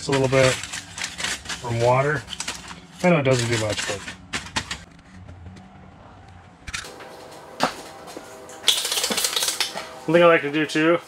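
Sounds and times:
aluminium foil crinkling: 7.6 - 10.2.

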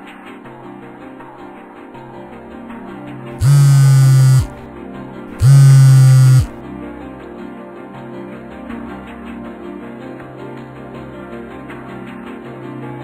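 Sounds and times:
harsh electric buzzes: 3.4 - 4.6, 5.4 - 6.5.

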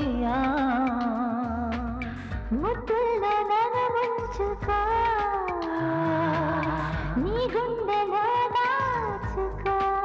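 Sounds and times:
low bass accompaniment: 0.0 - 3.4, 4.2 - 8.0, 8.8 - 10.0.

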